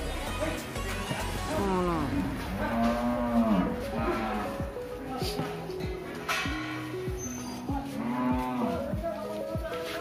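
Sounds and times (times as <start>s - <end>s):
cow mooing: 1.6s - 4.6s, 8.0s - 8.8s.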